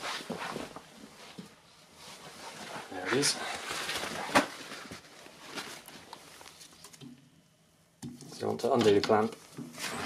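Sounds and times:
faint rustles and taps: 0.0s - 7.2s.

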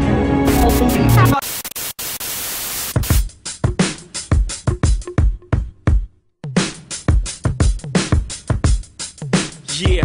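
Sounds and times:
music: 0.0s - 1.4s, 3.0s - 10.0s
static hiss: 0.5s - 3.2s.

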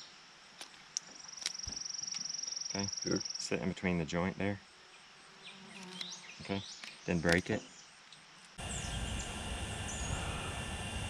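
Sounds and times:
flying insect buzzing: 5.2s - 6.4s, 8.6s - 11.0s.

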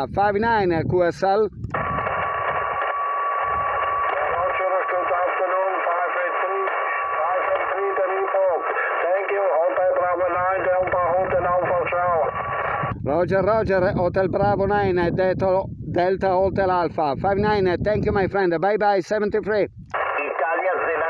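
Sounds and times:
receiver hiss: 1.7s - 12.9s, 19.9s - 21.0s
thin narrow-band radio speech: 3.8s - 14.1s, 18.8s - 21.0s.

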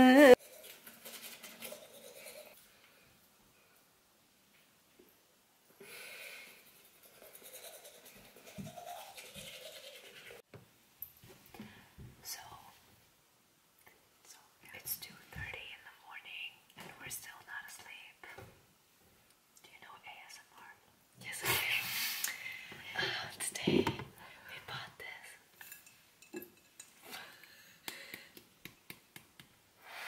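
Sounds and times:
person whispering: 12.2s - 12.8s, 14.3s - 18.4s, 19.6s - 21.9s, 22.9s - 25.5s.

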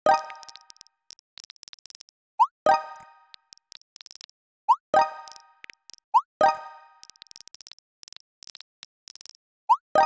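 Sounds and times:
faint keyboard clicks: 0.1s - 2.2s, 5.2s - 9.4s.

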